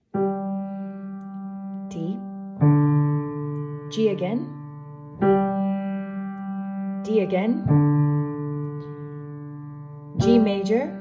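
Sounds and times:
low piano bass note: 0.2 - 11.0.

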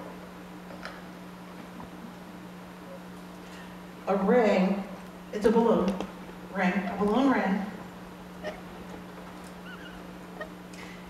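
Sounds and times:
steady low hum: 0.0 - 11.0
faint short squeaks: 9.6 - 10.5.

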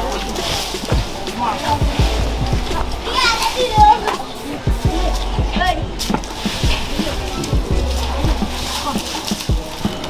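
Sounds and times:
music: 0.0 - 10.0
people calling and chattering: 0.0 - 10.0.

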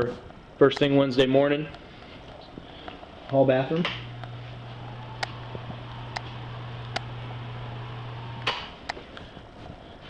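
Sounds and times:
low hum: 3.9 - 10.0.

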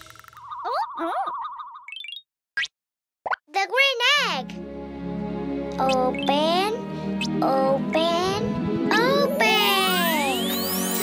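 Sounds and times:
warbling tone: 9.8 - 11.0
short gliding chirps: 9.9 - 11.0.

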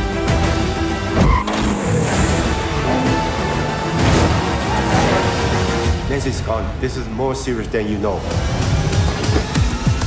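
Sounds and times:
film trailer music: 0.0 - 10.0.

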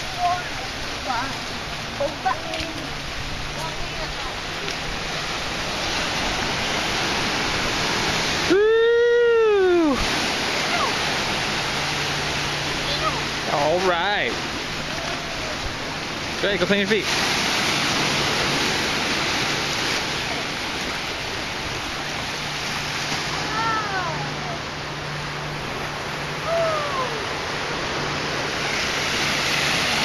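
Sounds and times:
ocean surf on rocky beach: 0.0 - 30.0.

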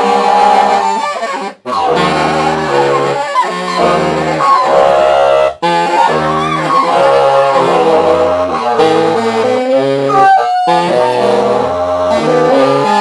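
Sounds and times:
saxophones improvising: 0.0 - 13.0.

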